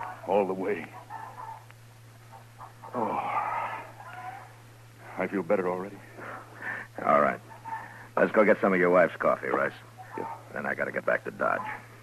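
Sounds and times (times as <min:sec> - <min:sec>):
low hum of old radio recording: 0:00.0 - 0:12.0.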